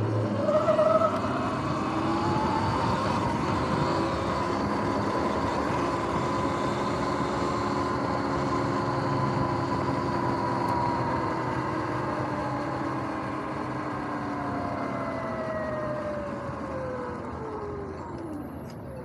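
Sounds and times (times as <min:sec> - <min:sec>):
electric motor whine: 0:00.0 - 0:19.0.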